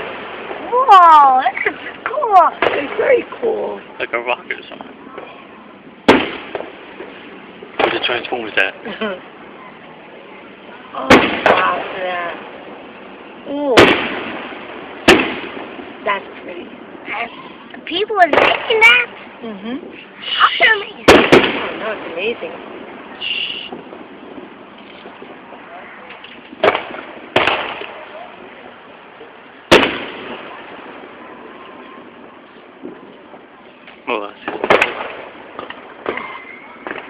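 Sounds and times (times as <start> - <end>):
firework shells bursting: 1.5 - 3.4, 4.5 - 8.7, 11.0 - 19.4, 20.3 - 37.0.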